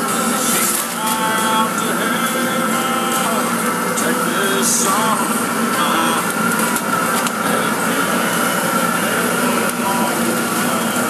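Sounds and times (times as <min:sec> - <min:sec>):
mechanical hum: 0:00.0 - 0:11.0
whining tones: 0:00.0 - 0:11.0.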